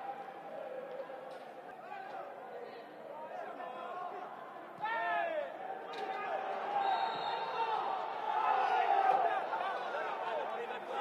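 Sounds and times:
footballers shouting: 4.8 - 11.0.

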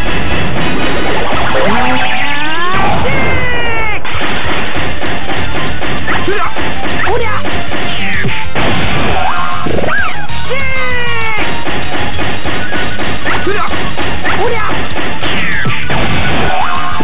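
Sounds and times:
busy game music: 0.0 - 17.0.

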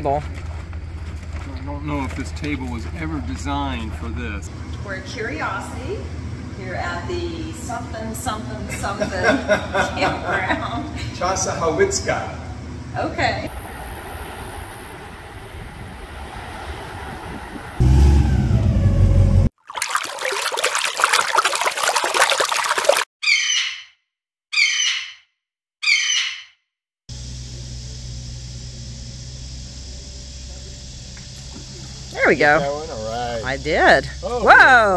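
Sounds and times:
steady low hum: 0.0 - 16.9, 27.1 - 34.9
low rumble: 12.2 - 19.5
loud rushing noise: 13.5 - 19.5
short high bird calls: 23.2 - 25.2, 25.8 - 26.6.

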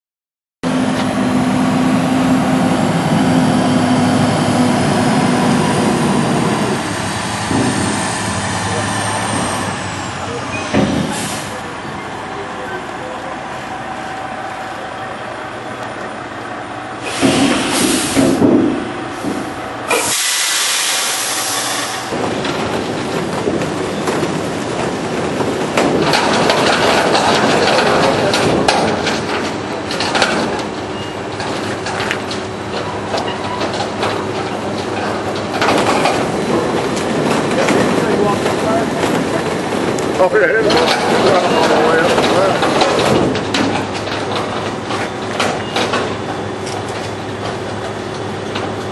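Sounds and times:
air hiss: 19.9 - 22.1
steady rattling: 22.1 - 48.7.

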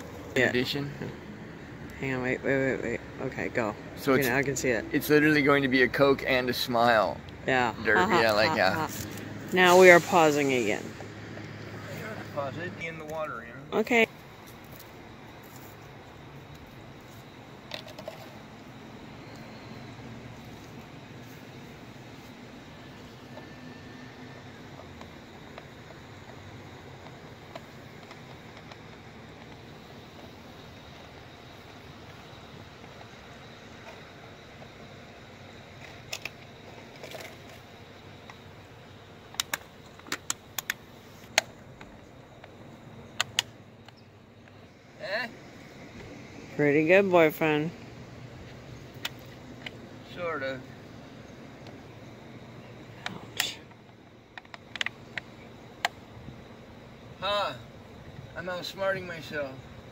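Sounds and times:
outdoor background noise: 0.0 - 59.9
sharp clicks and knocks: 39.3 - 44.6, 53.0 - 56.0.

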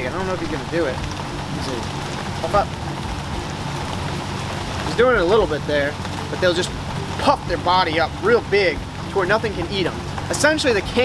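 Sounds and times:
heavy rain downpour: 0.0 - 11.0.

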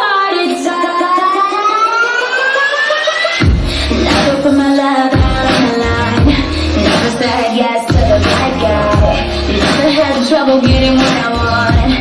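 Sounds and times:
synth riser gliding upward: 0.8 - 3.5.

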